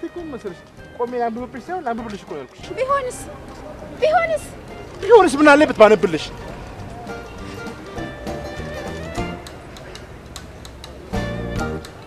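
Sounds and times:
soft film score music: 0:00.0 - 0:05.0
light sharp percussive ticks: 0:00.1 - 0:02.6, 0:08.8 - 0:12.0.

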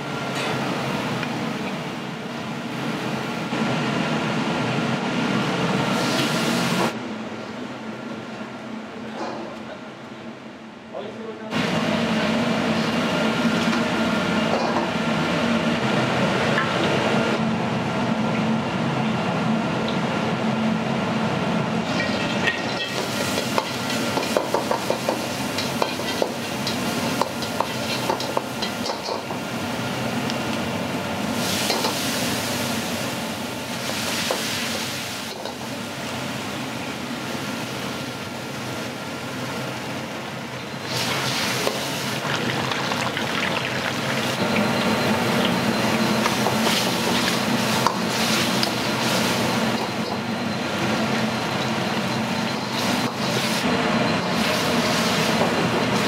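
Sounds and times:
wok burner roaring: 0:00.0 - 0:56.0
food deep-frying in oil: 0:21.8 - 0:29.8, 0:40.2 - 0:56.0
loud sizzling: 0:40.8 - 0:56.0.

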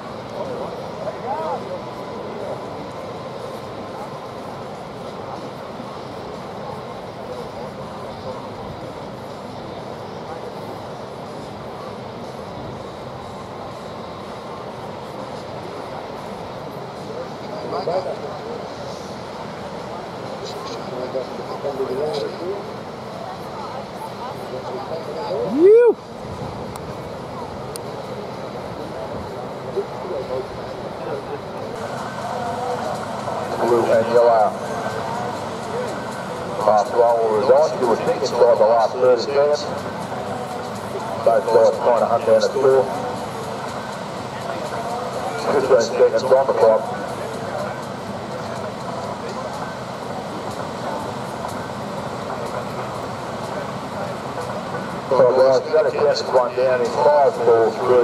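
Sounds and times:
steady rushing noise: 0:00.0 - 0:58.0
wind: 0:00.0 - 0:58.0.

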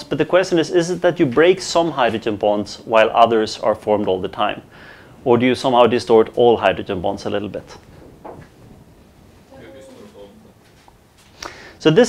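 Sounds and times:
distant person speaking: 0:09.5 - 0:10.6.

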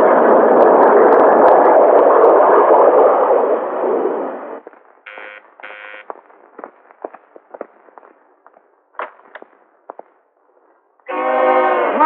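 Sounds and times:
electric doorbell buzzing: 0:05.1 - 0:06.0.

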